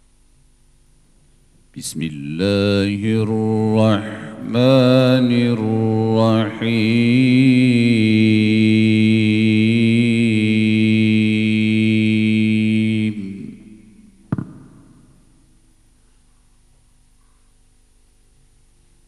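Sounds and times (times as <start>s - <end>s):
man reciting melodically: 1.7s - 13.9s
short knock: 14.3s - 15.1s.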